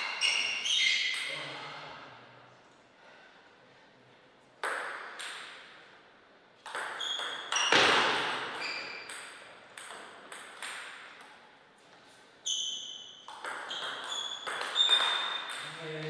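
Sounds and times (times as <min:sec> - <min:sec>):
table tennis ball hits: 0:04.6 - 0:05.8, 0:06.6 - 0:11.4, 0:13.1 - 0:16.0.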